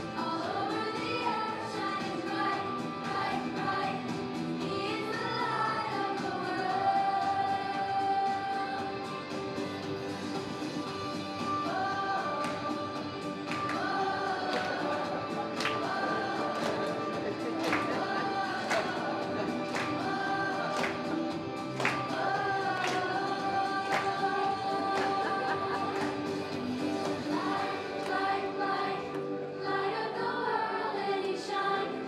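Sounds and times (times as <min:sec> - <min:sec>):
children singing upbeat song: 0:00.0 - 0:32.0.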